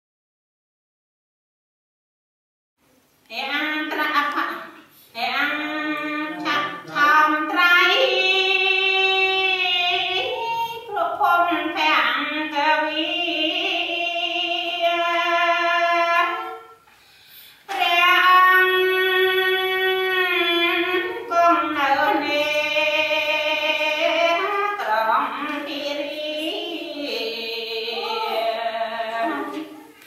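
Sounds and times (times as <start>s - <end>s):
high voice singing held notes: 24.0s - 30.0s.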